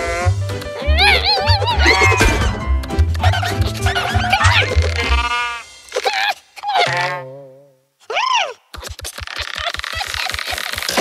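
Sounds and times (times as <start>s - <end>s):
music beat: 0.3s - 5.9s
cartoon character vocal cries: 0.8s - 2.4s, 3.2s - 8.7s.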